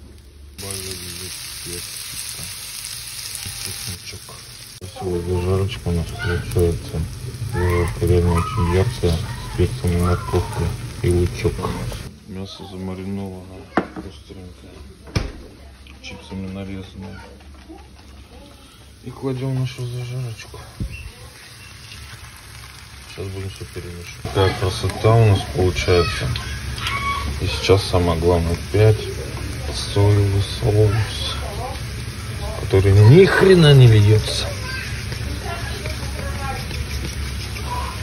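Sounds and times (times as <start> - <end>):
food sizzling in a pan: 0.0 - 14.6, 17.7 - 38.0.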